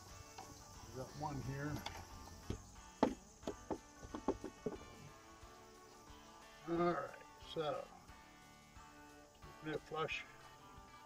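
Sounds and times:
soft background music: 0.0s - 11.0s
light wooden knocks and clicks: 1.7s - 4.9s.

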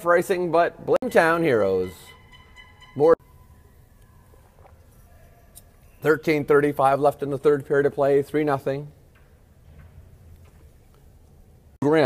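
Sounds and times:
faint distant knocks: 9.0s - 11.4s.

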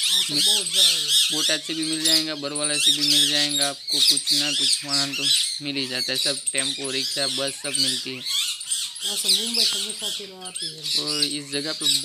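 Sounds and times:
birds chirping and squawking: 0.0s - 12.0s
man talking: 1.3s - 8.3s, 10.9s - 12.0s.

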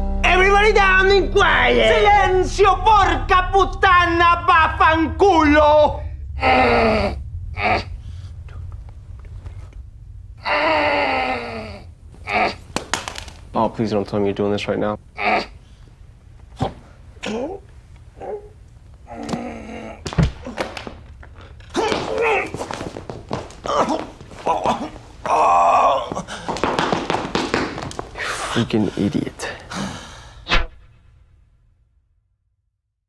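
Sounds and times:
person groaning: 6.3s - 8.0s, 10.4s - 12.6s, 17.2s - 17.7s, 19.1s - 20.7s.

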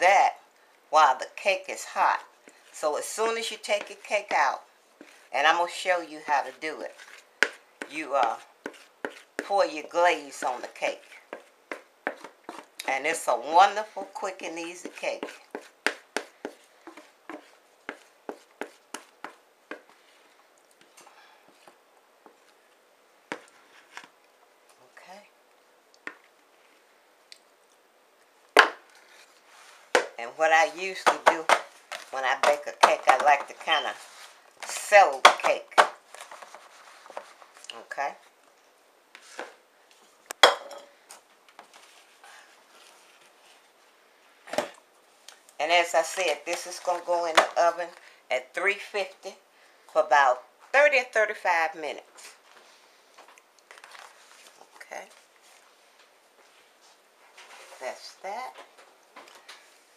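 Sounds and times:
wooden spoon knocking plastic bowl: 31.0s - 33.6s.

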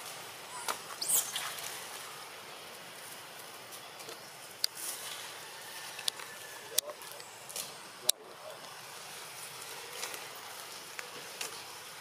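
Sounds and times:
steady high hiss: 0.0s - 12.0s.

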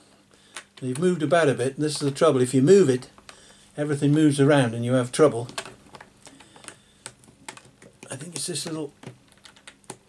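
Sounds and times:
puzzle pieces clicking: 5.4s - 10.0s.

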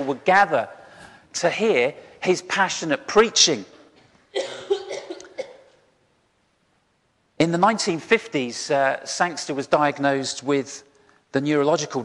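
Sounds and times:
man coughing: 4.3s - 5.8s.

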